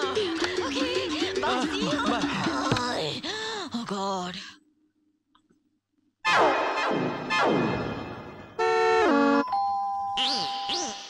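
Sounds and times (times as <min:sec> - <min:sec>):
background music: 0:00.0 - 0:03.0
two-note doorbell chime: 0:09.2 - 0:10.8.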